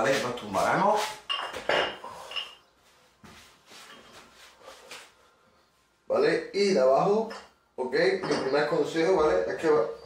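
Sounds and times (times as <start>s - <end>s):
dumbbell plates clinking: 1.3s - 2.7s.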